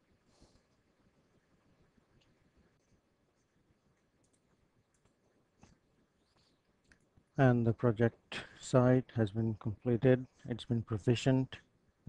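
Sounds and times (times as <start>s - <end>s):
faint clicks: 2.2s - 7.3s.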